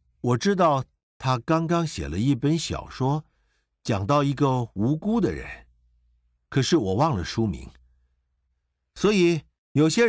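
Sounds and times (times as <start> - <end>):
man speaking: 0.2 - 5.7, 6.5 - 7.8, 9.0 - 10.0.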